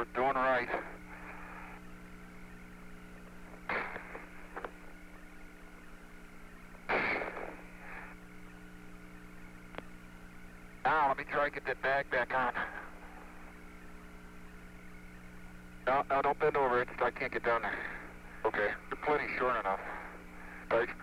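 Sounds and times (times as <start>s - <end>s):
electrical hum: 0.0s - 21.0s
faint radio hiss: 0.0s - 21.0s
short noise bursts: 3.6s - 4.6s, 6.9s - 9.0s
faint clicks: 9.7s - 9.9s.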